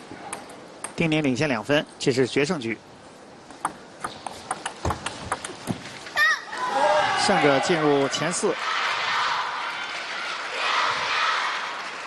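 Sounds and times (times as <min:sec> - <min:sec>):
table tennis ball clicking: 0:03.6 - 0:05.8.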